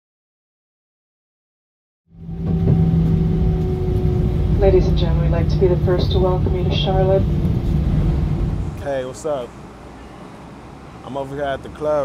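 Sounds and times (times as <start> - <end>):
held hum tones: 2.1 - 9.8
airliner engine rumble: 2.1 - 12.0.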